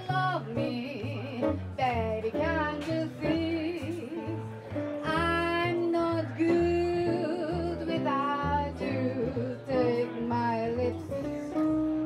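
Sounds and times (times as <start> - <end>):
archtop guitar: 0.0 - 12.0
plucked upright bass: 0.0 - 12.0
woman singing a ballad: 0.0 - 12.0.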